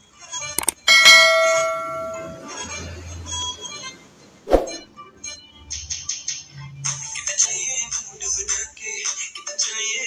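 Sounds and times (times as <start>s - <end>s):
quick clicks: 0.6s - 0.9s
bell ding: 0.6s - 2.7s.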